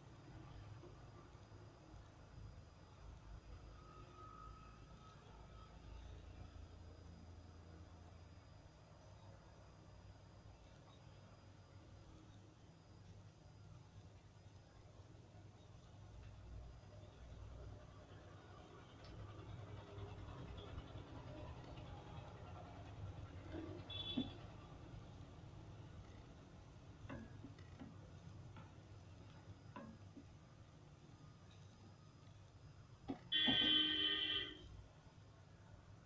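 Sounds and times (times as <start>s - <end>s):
food simmering in water: 0.0s - 36.0s.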